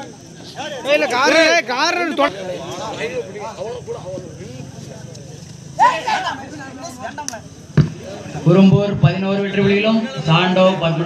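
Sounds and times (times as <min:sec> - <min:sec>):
players and spectators shouting: 0:00.0 - 0:04.8, 0:05.5 - 0:11.0
sharp thud: 0:07.8 - 0:08.0.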